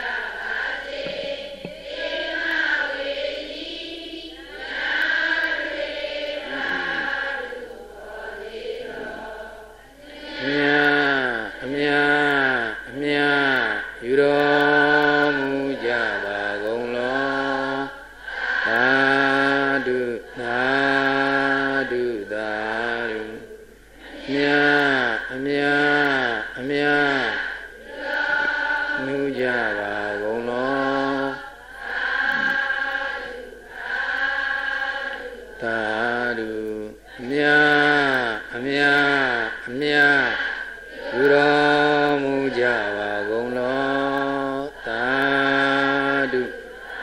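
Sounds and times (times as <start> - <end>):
chanting with long syllables: 0.0 - 47.0.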